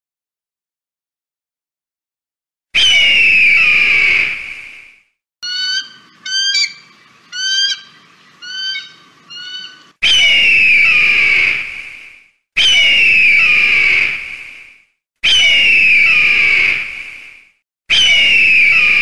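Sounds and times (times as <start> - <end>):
bird of prey screaming: 2.8 - 4.3, 5.4 - 11.6, 12.6 - 14.1, 15.2 - 16.8, 17.9 - 19.0
bird of prey chittering: 5.4 - 10.2.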